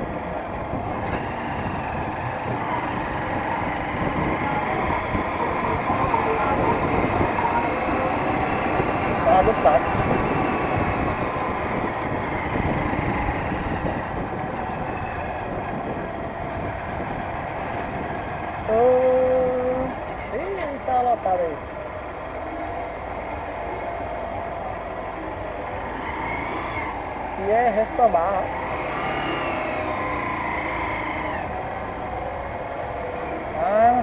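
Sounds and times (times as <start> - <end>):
wind and road noise: 0.0 - 34.0.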